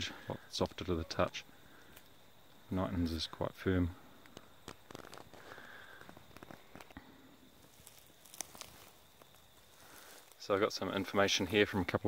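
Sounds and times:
faint clicks: 1.3 - 2.2, 4.2 - 7.0.

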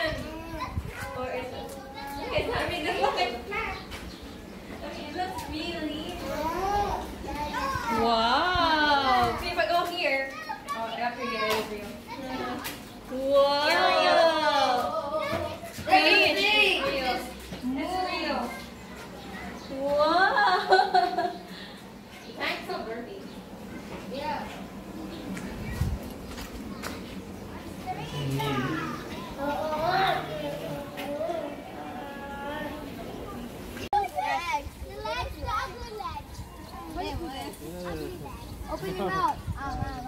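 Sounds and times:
voices talking: 0.0 - 40.0
young children calling out: 27.8 - 33.1.

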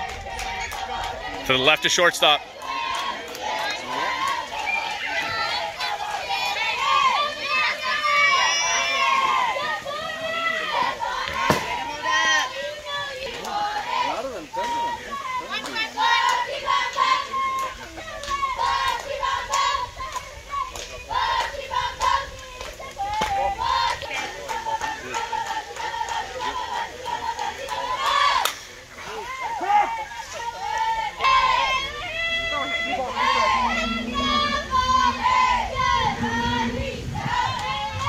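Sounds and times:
girls shouting and chanting cheers: 2.4 - 14.0, 27.8 - 38.0.

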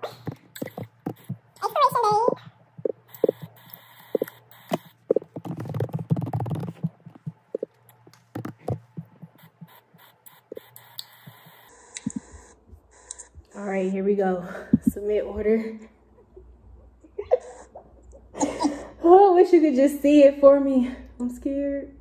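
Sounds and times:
laptop keyboard tapping: 0.0 - 2.2, 2.8 - 12.3
low steady hum: 0.0 - 22.0.

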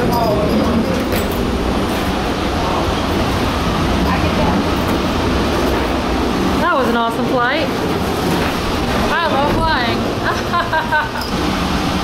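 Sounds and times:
aircraft machinery rumble and hiss: 0.0 - 12.0.

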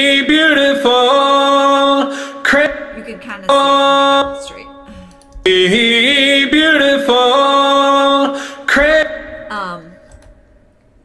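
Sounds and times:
man singing: 0.0 - 2.9, 3.5 - 9.5.

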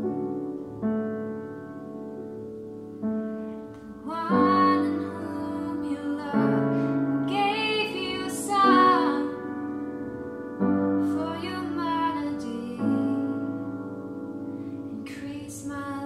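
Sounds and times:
piano chords: 0.0 - 16.0
woman singing: 4.0 - 9.7, 10.9 - 13.9, 14.9 - 16.0.

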